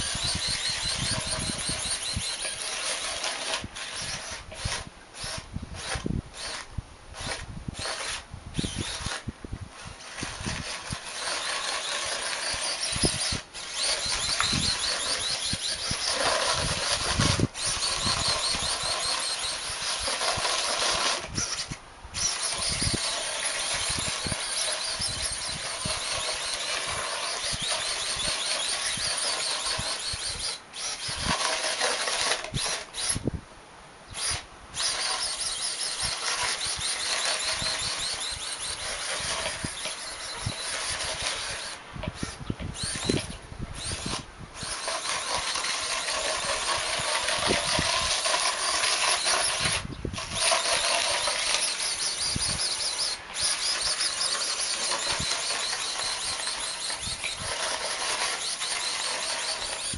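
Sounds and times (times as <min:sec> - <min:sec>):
electric gear motors whining: 0:00.0 - 0:33.4, 0:34.1 - 0:59.9
snow pushed across paving tiles: 0:09.8 - 0:25.0, 0:25.6 - 0:33.1, 0:44.6 - 0:59.9.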